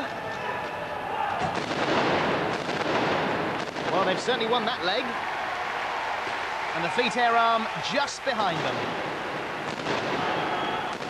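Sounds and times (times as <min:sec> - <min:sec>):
field guns firing: 0:01.4 - 0:04.8, 0:08.6 - 0:11.0.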